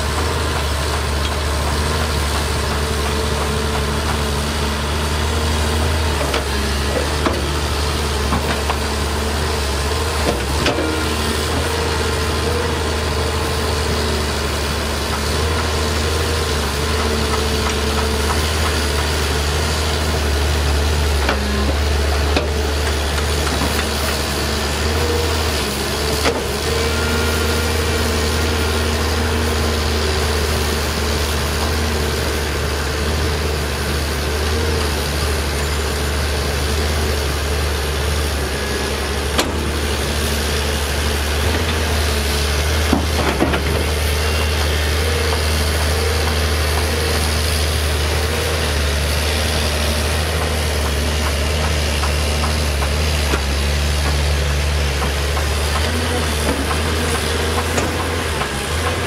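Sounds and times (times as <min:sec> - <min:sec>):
excavator diesel engine running: 0:00.0 - 0:59.0.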